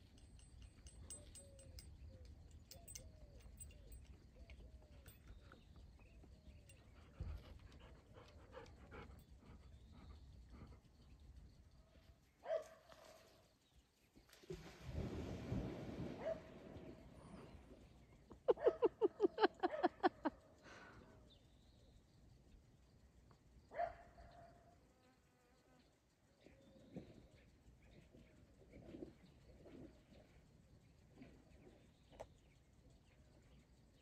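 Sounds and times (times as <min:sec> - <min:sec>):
faint water splashing: 0:14.3 - 0:17.9.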